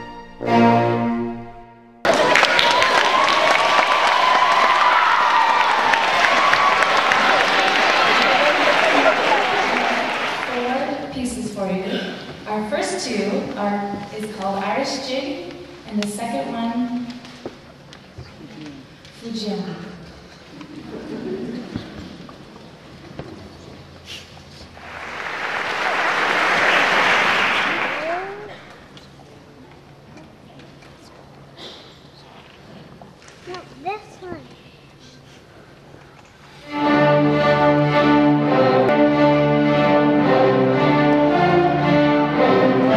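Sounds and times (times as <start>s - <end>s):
crowd cheering: 2.0s - 10.8s, 24.8s - 28.8s
audience applauding: 2.0s - 10.9s, 24.8s - 28.9s.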